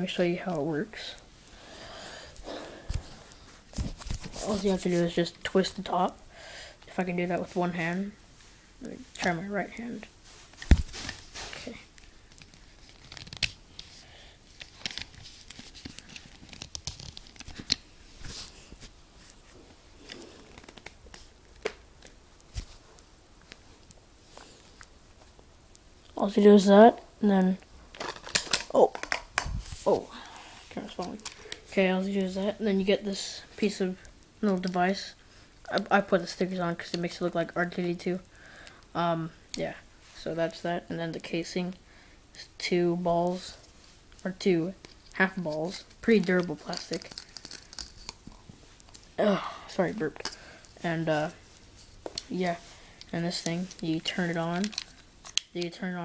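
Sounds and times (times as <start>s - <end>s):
plastic clicks and rubbing: 14.6s - 17.8s, 46.2s - 49.1s
plastic casing clicking and rustling: 28.0s - 29.5s, 46.2s - 49.0s, 53.0s - 55.6s.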